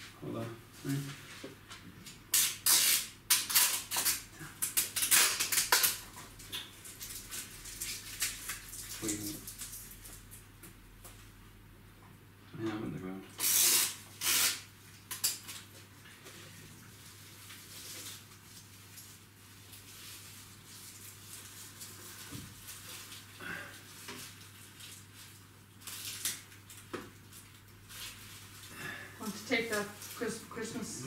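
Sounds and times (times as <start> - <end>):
decoration rustling: 15.4 - 31.0.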